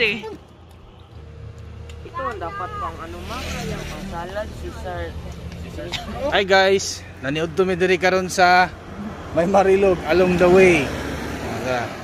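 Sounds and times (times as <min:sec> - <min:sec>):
vehicle engine rumbling: 0:00.0 - 0:12.0
people talking: 0:02.0 - 0:08.7.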